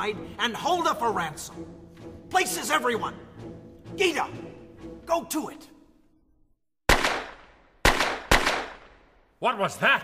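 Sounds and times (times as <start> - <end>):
gunshots with echo: 6.9 - 9.2.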